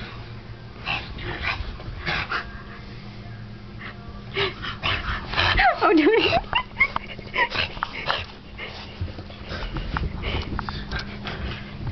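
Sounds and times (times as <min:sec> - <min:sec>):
dog huffing and scuffling: 0:04.9 - 0:11.9.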